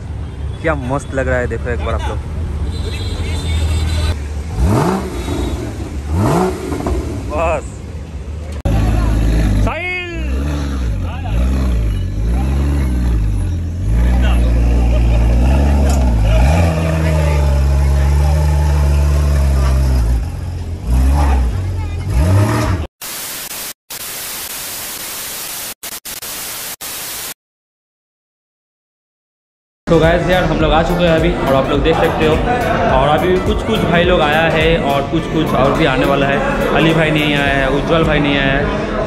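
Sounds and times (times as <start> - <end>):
motorcycle engine revving: 4.1 - 7.6, 8.6 - 22.9.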